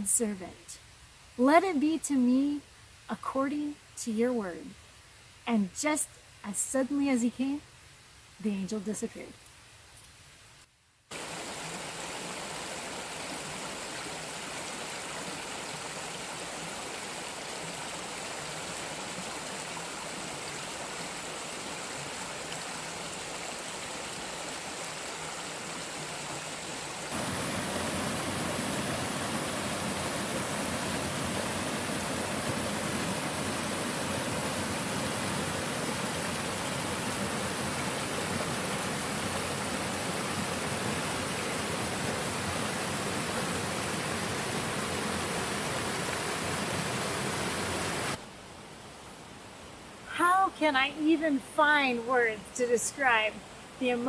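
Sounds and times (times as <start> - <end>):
creek water rushing over rocks: 11.1 - 48.2.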